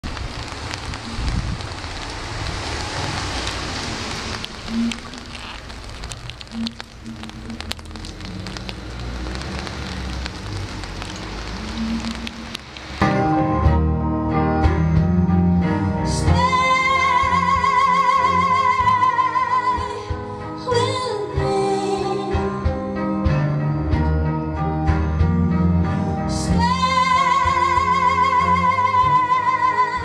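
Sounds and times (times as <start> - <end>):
crackling venue noise: 0.0 - 30.0
scattered clicks: 4.3 - 13.0
band music: 11.8 - 30.0.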